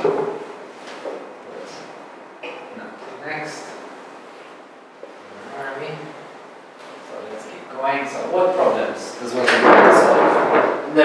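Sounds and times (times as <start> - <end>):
chair scraping: 0.0 - 1.9, 8.5 - 11.0
man talking: 7.0 - 11.0.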